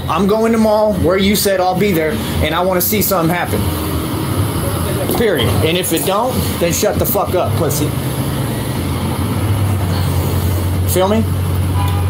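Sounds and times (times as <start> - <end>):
street noise: 0.0 - 12.0
traffic engine rumble: 0.0 - 12.0.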